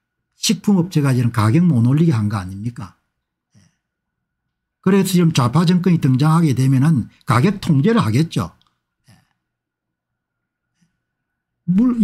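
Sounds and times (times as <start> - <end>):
faint breath: 10.6 - 11.5.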